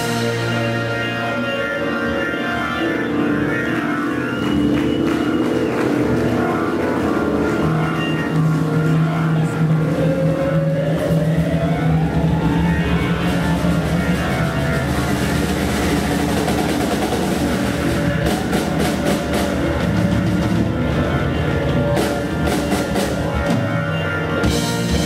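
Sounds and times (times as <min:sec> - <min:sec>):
rock band playing live: 0:00.0 - 0:25.0
sustained chords gliding upward: 0:00.0 - 0:25.0.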